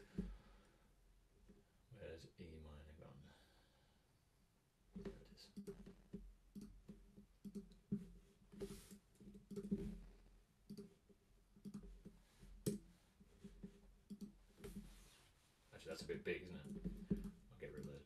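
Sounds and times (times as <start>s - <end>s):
computer mouse clicks: 5.5s - 7.8s, 8.9s - 9.8s, 10.7s - 10.9s, 11.6s - 12.8s, 14.1s - 14.8s, 16.6s - 18.0s
keyboard tapping: 16.6s - 18.0s.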